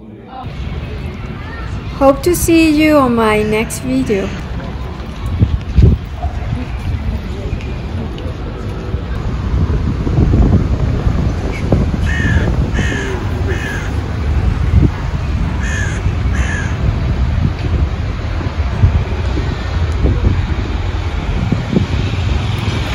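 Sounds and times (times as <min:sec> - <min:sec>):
steady low rumble: 0:00.5 - 0:22.9
crow cawing: 0:12.0 - 0:14.0, 0:15.6 - 0:16.8.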